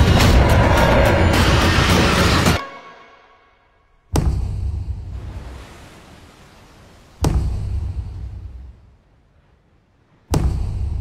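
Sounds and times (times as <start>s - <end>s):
low rumbling tail: 0.0s - 2.6s.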